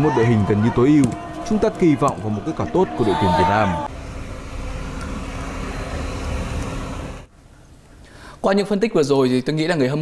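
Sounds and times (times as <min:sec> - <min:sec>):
outdoor ambient rumble: 0:00.4 - 0:08.2.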